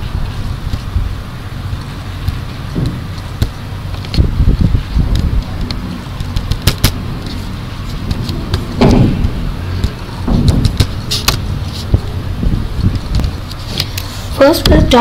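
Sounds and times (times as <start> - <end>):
low thuds: 0.0 - 13.8
steady low rumble: 0.0 - 15.0
sharp clicks and knocks: 1.6 - 14.9.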